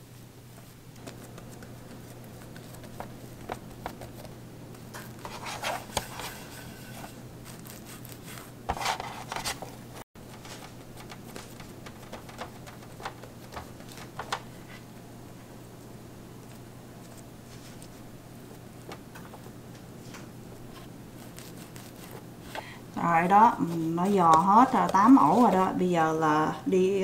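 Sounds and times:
hands rubbing dough: 0.0 - 14.9, 16.4 - 25.9.

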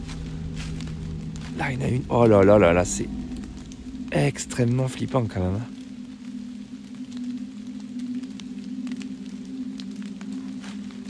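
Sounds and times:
steady low hum: 0.0 - 11.0
faint ticks: 5.7 - 11.0.

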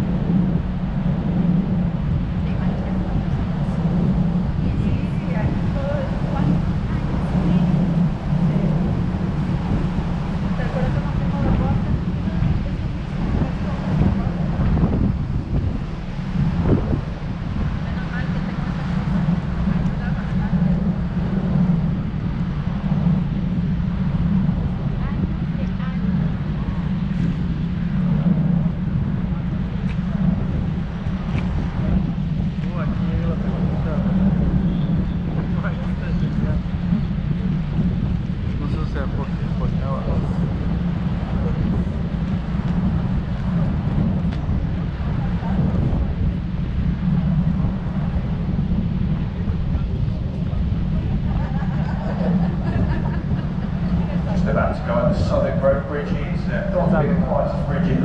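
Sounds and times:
boat engine droning: 0.0 - 58.0
wind buffeting microphone: 0.0 - 58.0.

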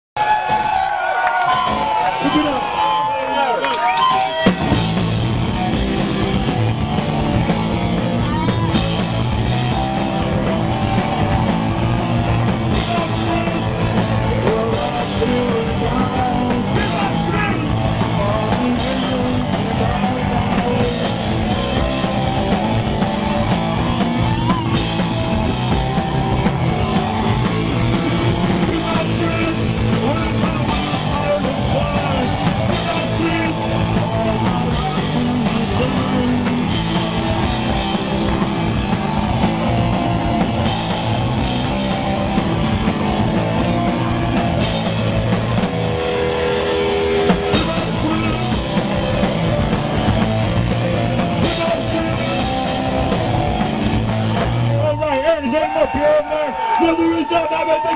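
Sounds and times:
punk rock band playing live: 0.2 - 57.9.

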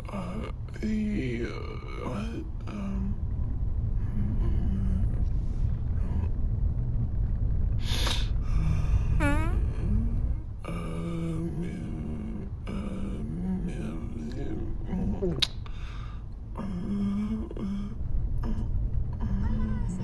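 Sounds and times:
held low tone: 0.0 - 7.1, 8.4 - 15.5, 16.4 - 20.0.

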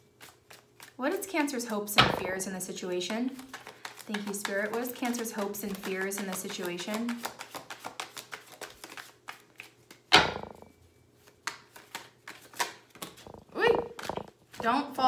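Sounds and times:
cards being shuffled: 0.2 - 10.6, 11.2 - 14.6.

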